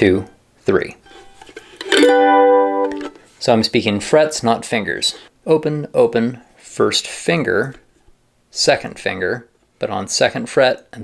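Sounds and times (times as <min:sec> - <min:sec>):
mandolin strumming a chord: 0:01.9 - 0:03.2.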